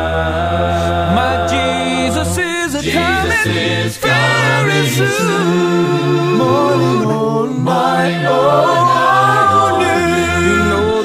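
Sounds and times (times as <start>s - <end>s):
male vocal group singing in harmony: 0.0s - 11.0s.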